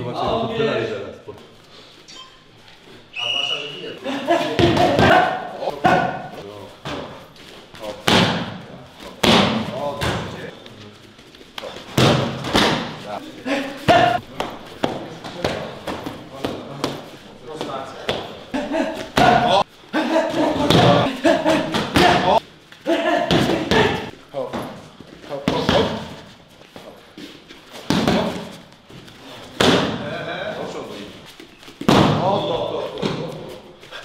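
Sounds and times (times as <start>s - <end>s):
voices: 3.1s - 7.2s, 7.8s - 26.2s.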